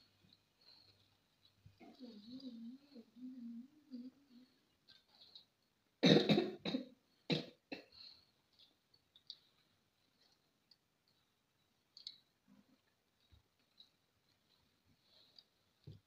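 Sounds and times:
person coughing: 6.0 - 7.9.

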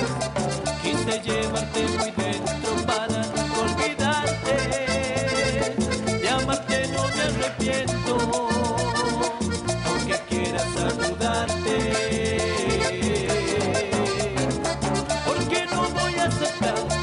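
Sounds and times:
latin dance band playing: 0.0 - 17.0
man singing into microphone: 0.7 - 17.0.

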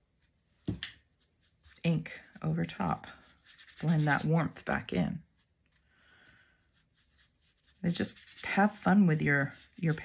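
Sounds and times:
paintbrush scratch: 1.0 - 5.8, 6.4 - 10.0
woman speaking: 1.8 - 5.4, 7.8 - 10.0.

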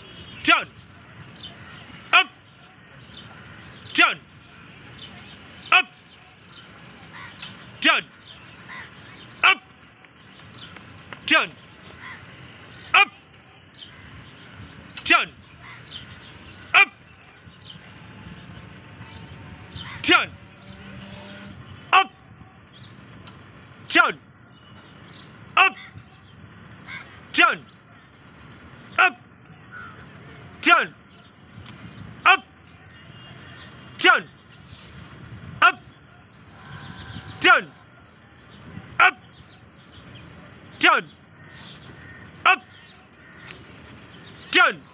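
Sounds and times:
outdoor background noise: 0.0 - 44.9
person shouting drill call: 2.1 - 2.5, 9.4 - 9.7, 12.8 - 13.3, 16.7 - 17.0, 21.9 - 22.3, 25.6 - 26.0, 29.0 - 29.3, 30.6 - 31.0, 32.2 - 32.6, 34.0 - 34.3, 35.6 - 35.9, 39.0 - 39.2, 42.4 - 42.8.

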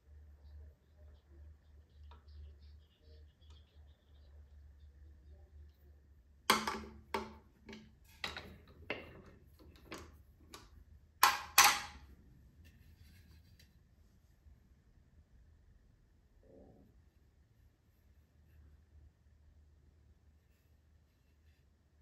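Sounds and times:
wooden bowl knocking on metal: 6.5 - 9.3, 11.2 - 12.0.

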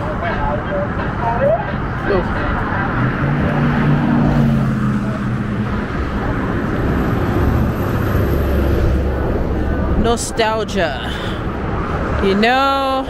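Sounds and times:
passing road traffic drone: 0.0 - 13.0.

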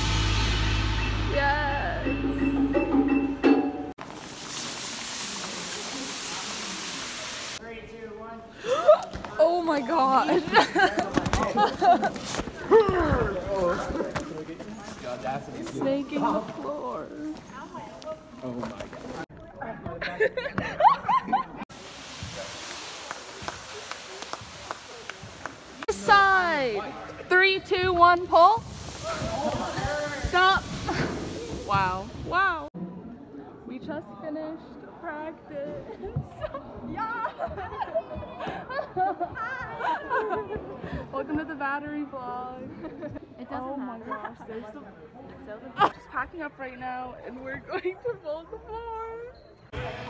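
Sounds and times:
mallet percussion: 0.0 - 4.0
steady hiss: 4.0 - 7.6, 21.7 - 32.7.

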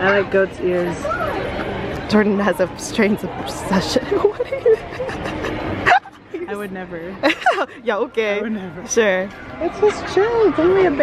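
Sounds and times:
people laughing: 3.7 - 8.0.

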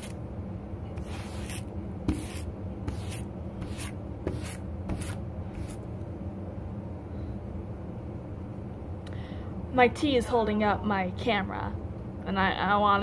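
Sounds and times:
low steady hum: 0.0 - 13.0
brush raking through fur: 1.0 - 5.8.

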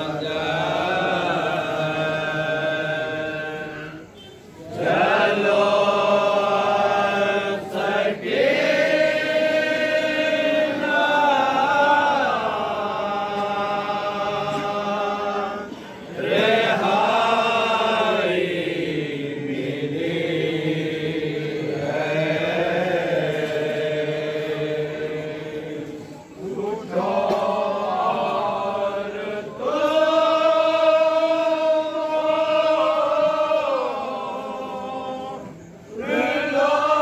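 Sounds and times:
men chanting a lament: 0.0 - 37.0.

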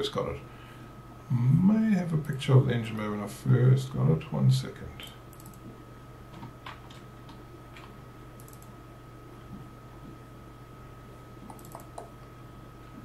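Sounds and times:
faint electrical hum: 0.0 - 13.0
computer mouse clicking: 5.3 - 5.7, 7.8 - 8.7, 11.4 - 12.1.

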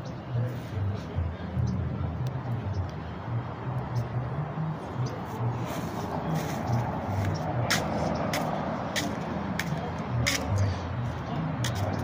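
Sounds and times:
road traffic: 0.0 - 12.0
footsteps scuffing on concrete: 5.4 - 10.6.

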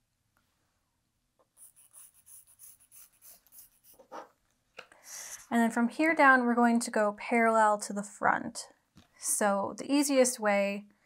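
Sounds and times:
marker scratching on fabric: 1.5 - 4.4.

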